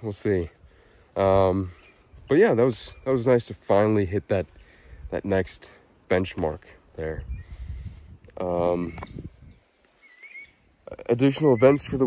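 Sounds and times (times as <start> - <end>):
faint bird chirp: 0.5 - 5.0, 6.8 - 12.0.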